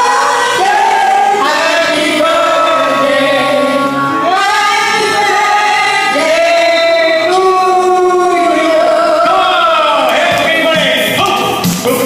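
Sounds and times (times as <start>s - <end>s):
group singing a birthday song: 0.0s - 11.2s.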